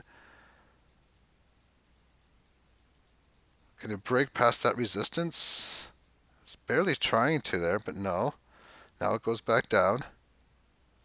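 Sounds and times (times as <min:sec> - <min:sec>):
faint computer mouse clicks: 0:00.0 - 0:04.2.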